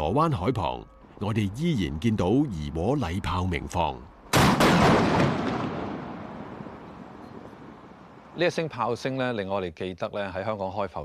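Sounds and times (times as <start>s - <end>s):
cannon blast rumble: 4.3s - 8.2s.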